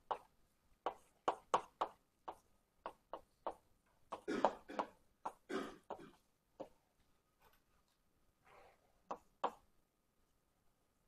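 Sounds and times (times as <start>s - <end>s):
writing on a board: 0.0s - 6.8s, 7.4s - 9.7s.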